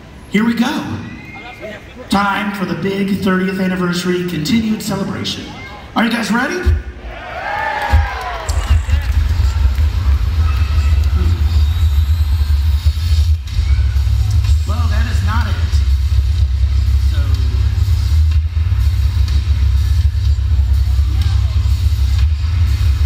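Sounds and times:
scattered voices: 8.0s - 16.0s
deep bass rumble over loudspeakers: 8.0s - 23.0s.

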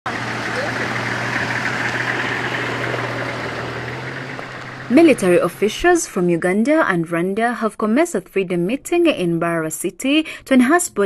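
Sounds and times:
vehicle engines humming: 0.0s - 7.2s
tyre noise on dirt road: 0.1s - 5.7s.

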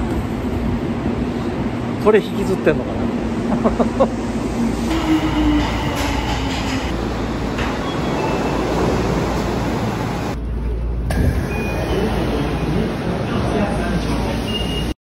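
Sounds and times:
subway train rumble: 0.0s - 15.0s.

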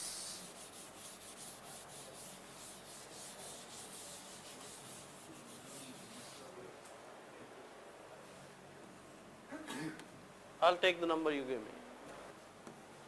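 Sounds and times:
duster rubbing on chalkboard: 0.0s - 6.5s.

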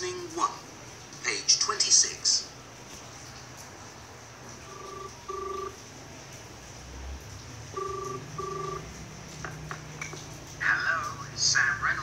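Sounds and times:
telephone ringing tone: 4.6s - 5.8s, 7.7s - 9.0s.

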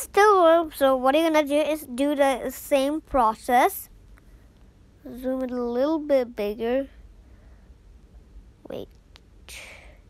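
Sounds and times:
breathy hiss: 9.5s - 10.0s.

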